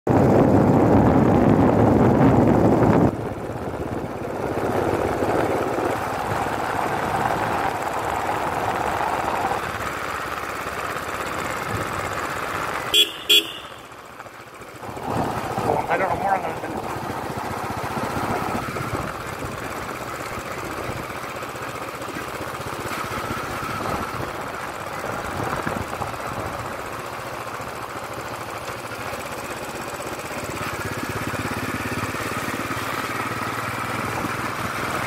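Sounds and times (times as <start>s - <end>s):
motorcycle engine: 0.1s - 35.0s
horn beeps: 12.9s - 13.9s.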